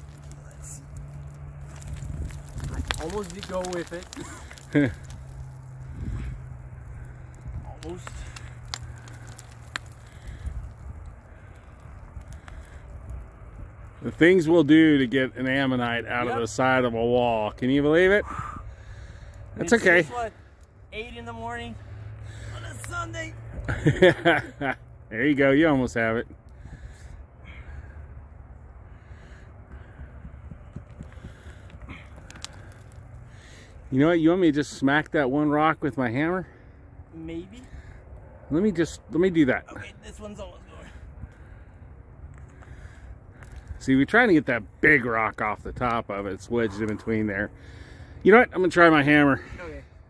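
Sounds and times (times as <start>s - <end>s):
wind rumbling on microphone: 0.0s - 14.3s, 26.6s - 33.8s
rock and dirt clicking: 0.0s - 18.2s, 29.1s - 34.2s, 42.3s - 49.6s.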